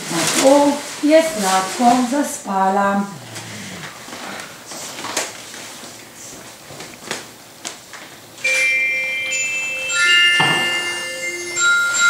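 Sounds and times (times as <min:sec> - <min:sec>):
glockenspiel note ringing: 0:08.4 - 0:12.0.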